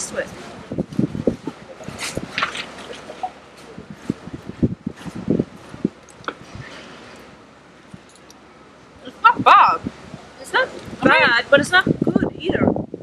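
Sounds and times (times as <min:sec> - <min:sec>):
wind gusting on microphone: 0:00.0 - 0:13.0.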